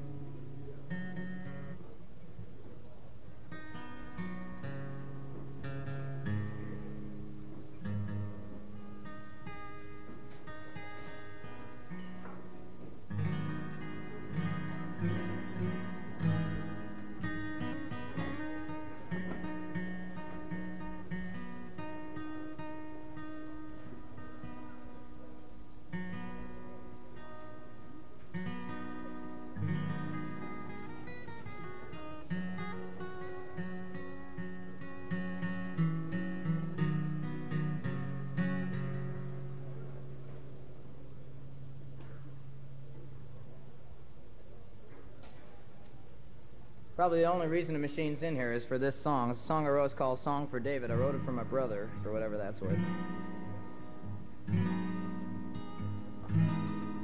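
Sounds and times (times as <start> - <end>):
acoustic guitar playing: 0.0 - 44.3, 46.3 - 57.0.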